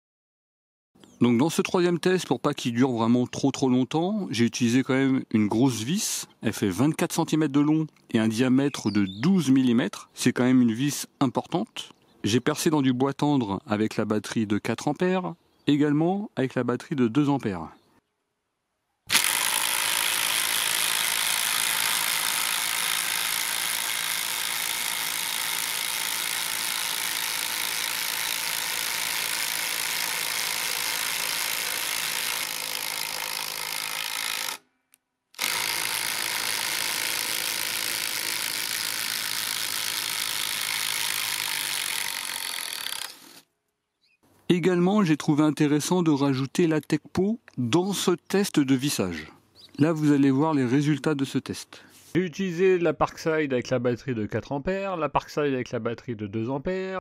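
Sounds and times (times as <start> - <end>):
impact driver hammering screw: 19.1 - 34.6, 35.4 - 43.4.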